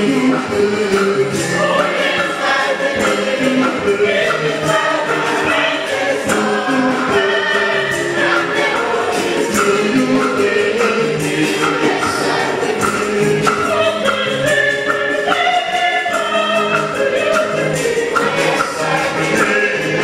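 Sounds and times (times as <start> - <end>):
congregation singing a hymn: 0.0 - 20.0
steady percussive beat: 0.0 - 20.0.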